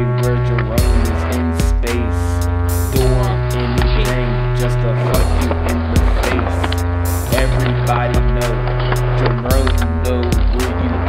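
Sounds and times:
rap beat with deep bass: 0.0s - 11.0s.

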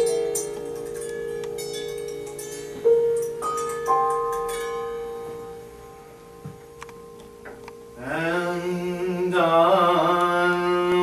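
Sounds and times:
harp notes ringing: 0.0s - 10.2s
piano notes ringing: 0.0s - 11.0s.

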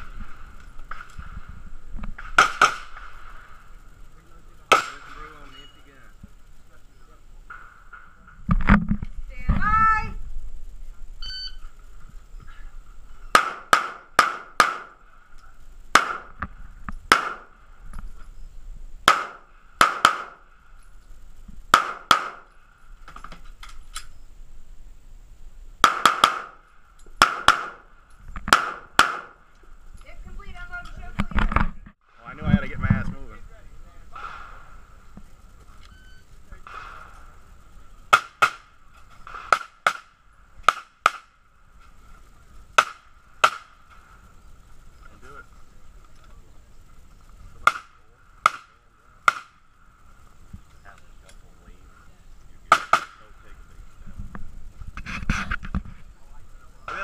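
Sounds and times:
pistol shots: 2.3s - 3.1s, 4.7s - 5.2s, 13.3s - 15.0s, 15.9s - 16.4s, 17.1s - 17.5s, 19.0s - 20.5s, 21.7s - 22.5s, 25.8s - 26.6s, 27.2s - 27.9s, 28.5s - 29.4s, 38.1s - 41.3s, 42.8s - 43.8s, 47.6s - 49.6s, 52.7s - 53.3s
shot timer beep: 11.2s - 11.6s.

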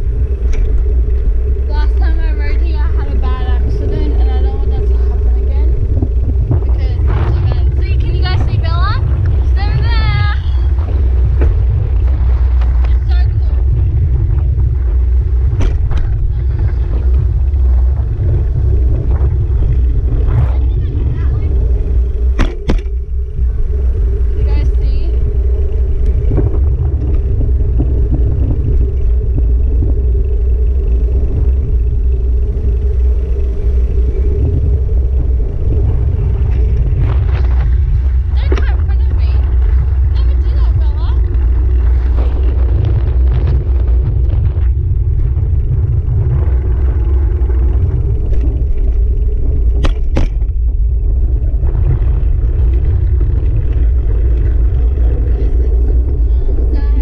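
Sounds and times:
mid-pitched hum: 0.0s - 57.0s
wind buffeting camera: 0.0s - 57.0s.

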